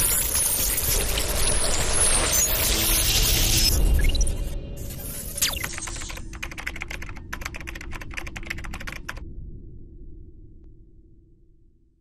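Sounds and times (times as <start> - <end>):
rapid digital clicks: 0.0 - 9.2.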